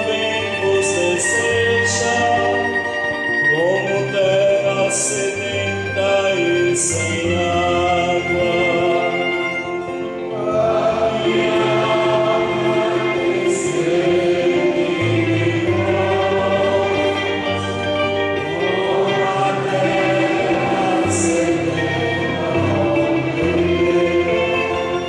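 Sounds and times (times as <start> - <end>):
instrumental accompaniment: 0.0 - 25.0
choir singing a hymn: 3.5 - 25.0.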